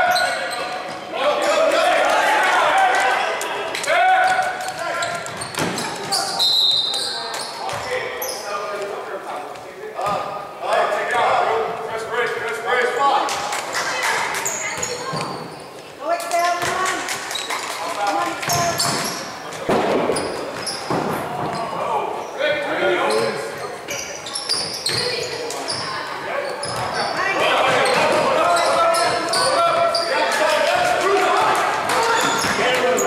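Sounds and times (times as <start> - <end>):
people shouting in a hall: 0.0 - 5.1.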